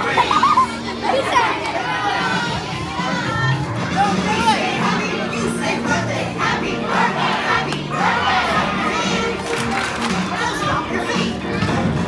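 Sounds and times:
children shouting: 0:00.0 - 0:03.7.

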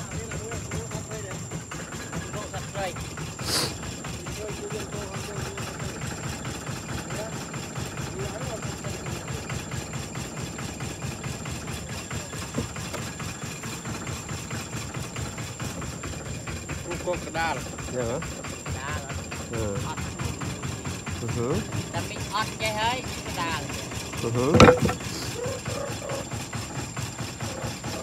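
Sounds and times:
small engine idling: 0:00.0 - 0:28.0.

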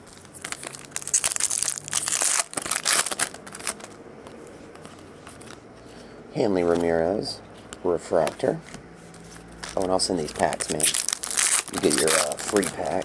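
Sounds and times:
foil pack tearing and crinkling: 0:00.1 - 0:03.9, 0:09.6 - 0:13.0
faint handling of foil: 0:08.1 - 0:13.0.

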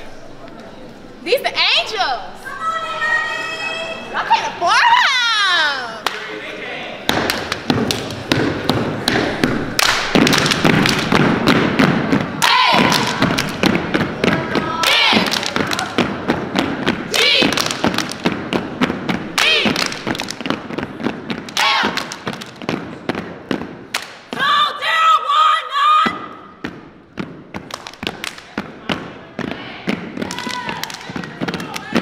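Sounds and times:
hand claps and body slaps: 0:07.1 - 0:11.8, 0:12.4 - 0:24.3, 0:27.5 - 0:28.8, 0:30.0 - 0:32.0
people shouting chants: 0:12.4 - 0:13.4, 0:14.4 - 0:16.0, 0:17.1 - 0:17.6, 0:19.4 - 0:19.8, 0:21.6 - 0:22.0.

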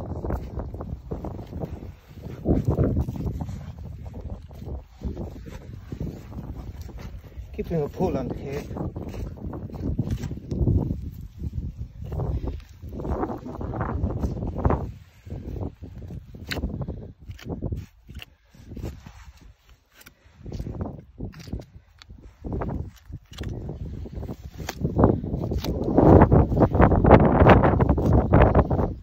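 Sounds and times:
hide rustling and scraping: 0:00.1 - 0:15.4.

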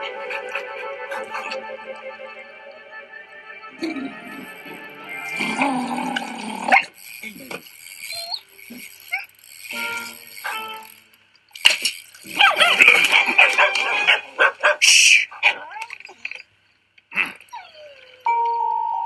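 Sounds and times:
background music: 0:00.0 - 0:06.7
cartoon dog barking: 0:12.3 - 0:16.0.

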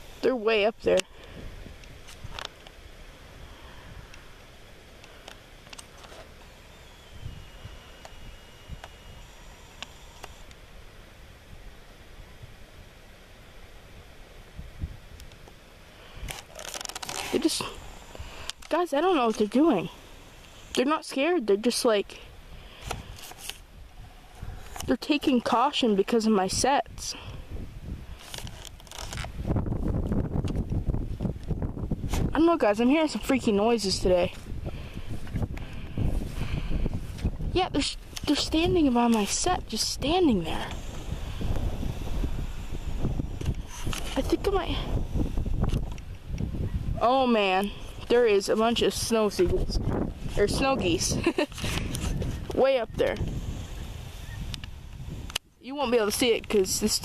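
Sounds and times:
wind buffeting microphone: 0:00.0 - 0:02.5, 0:06.8 - 0:10.5, 0:14.5 - 0:15.2, 0:22.4 - 0:57.0
low background hiss: 0:00.0 - 0:57.0
faint high whine of camera zoom: 0:00.9 - 0:20.9
camera handling rustle: 0:01.8 - 0:02.8, 0:05.0 - 0:10.6, 0:16.2 - 0:19.5, 0:22.7 - 0:23.7, 0:24.3 - 0:25.5, 0:28.1 - 0:32.3, 0:40.5 - 0:44.4, 0:45.2 - 0:46.5, 0:51.2 - 0:52.6
camera handling clicks and thumps: 0:05.0 - 0:06.5, 0:16.2 - 0:17.4, 0:22.8 - 0:23.6, 0:24.6 - 0:24.9, 0:28.2 - 0:29.4, 0:43.4 - 0:44.2, 0:45.6 - 0:46.4.

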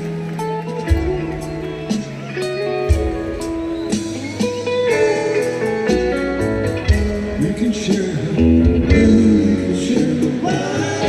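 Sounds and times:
electric guitar melody: 0:00.0 - 0:11.0
live rock band playing: 0:00.0 - 0:11.0.

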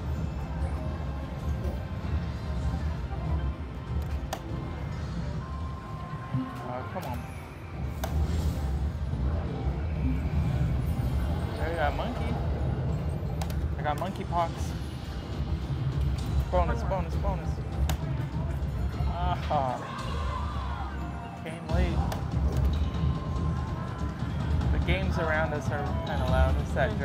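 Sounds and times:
low casino hum: 0:00.0 - 0:27.0
slot machine jingles and chimes: 0:10.6 - 0:15.5.

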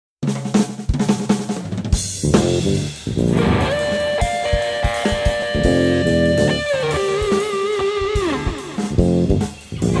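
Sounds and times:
drum kit fill: 0:00.2 - 0:10.0.

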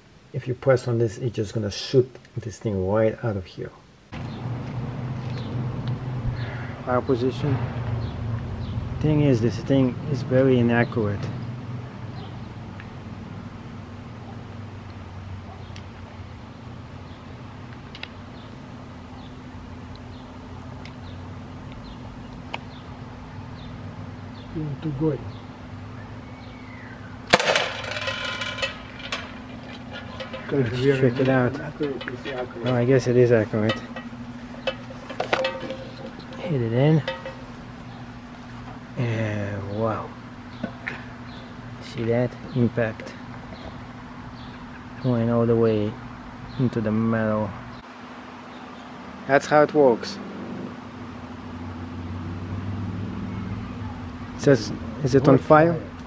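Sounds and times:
low mechanical hum: 0:00.0 - 0:56.0
bird chirps: 0:18.3 - 0:27.3.

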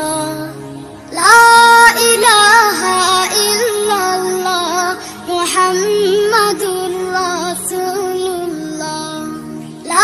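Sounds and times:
person singing devotional song: 0:00.0 - 0:10.0.

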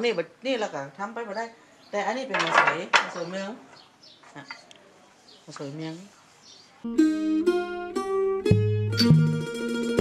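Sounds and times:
tubes clattering: 0:02.3 - 0:03.6.

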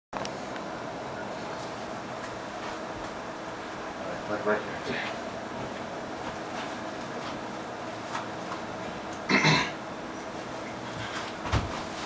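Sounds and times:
low room hum: 0:00.2 - 0:12.0.

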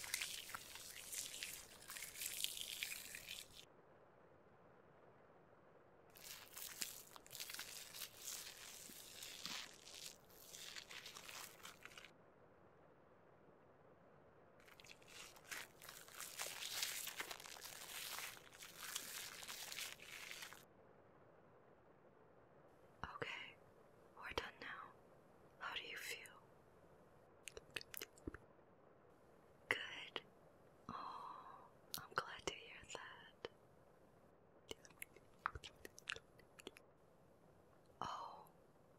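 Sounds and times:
razor scraping beard stubble: 0:00.0 - 0:03.6, 0:06.2 - 0:12.1
person whispering: 0:23.0 - 0:23.6, 0:24.2 - 0:25.0, 0:25.6 - 0:26.4, 0:29.7 - 0:30.2, 0:30.9 - 0:33.5, 0:38.0 - 0:38.5.

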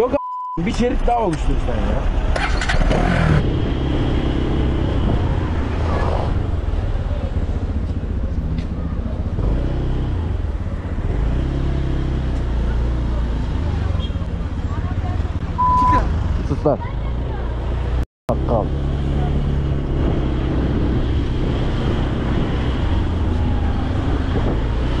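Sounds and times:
short steady beep: 0:00.0 - 0:00.6, 0:15.6 - 0:16.0
wind rumble: 0:02.0 - 0:11.3, 0:19.1 - 0:25.0.

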